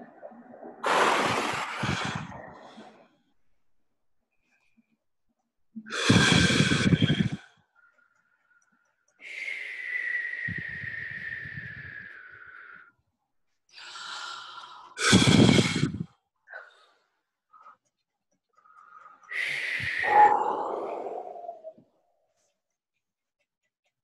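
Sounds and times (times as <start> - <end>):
breath blowing into microphone: 0.8 - 3.0, 5.9 - 7.5, 10.0 - 12.8, 15.0 - 16.1
whistle-like exhale: 9.2 - 12.9, 15.0 - 16.7, 19.2 - 21.8.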